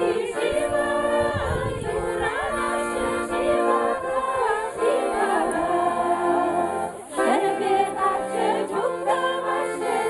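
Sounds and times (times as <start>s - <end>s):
accordion chords: 0.0s - 10.0s
women singing a folk song: 0.0s - 10.0s.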